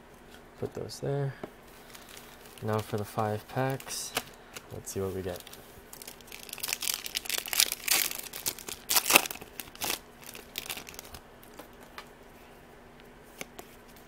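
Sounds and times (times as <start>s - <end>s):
foil wrapper crinkling and tearing: 1.8s - 4.3s, 5.2s - 11.2s.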